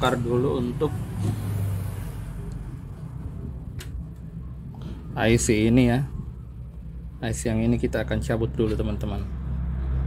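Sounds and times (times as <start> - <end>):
low background rumble: 2.0 - 8.6.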